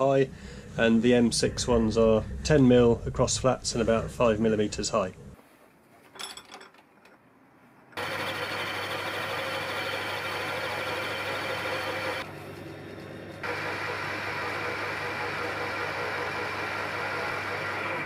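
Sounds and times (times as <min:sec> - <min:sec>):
metal lathe running: 0:08.0 - 0:12.4, 0:13.1 - 0:18.0.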